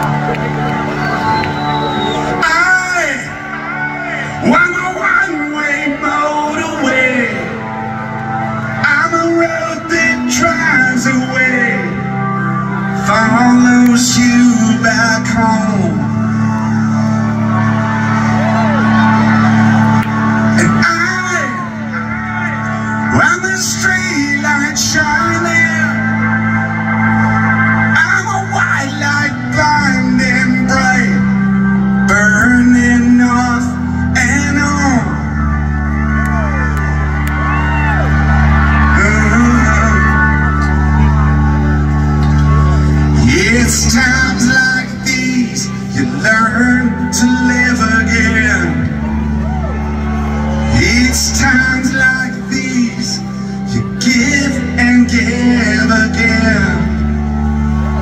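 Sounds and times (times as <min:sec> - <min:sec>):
audience shouting and whooping: 0:00.0 - 0:09.0, 0:16.0 - 0:58.0
live rock band playing: 0:21.5 - 0:58.0.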